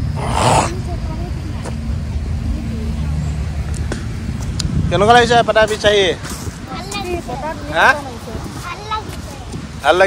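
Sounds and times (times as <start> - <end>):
low rumble: 0.0 - 7.5
distant voices: 0.0 - 10.0.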